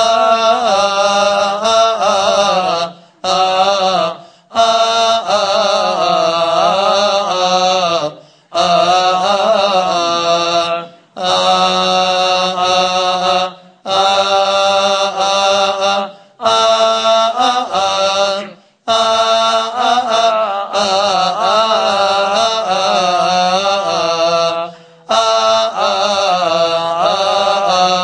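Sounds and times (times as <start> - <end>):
liturgical chanting: 0.0 - 28.0.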